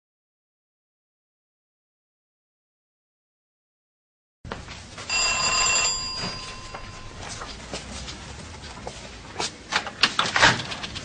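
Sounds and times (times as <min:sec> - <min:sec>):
bright bell-like ring: 0:05.1 - 0:07.6.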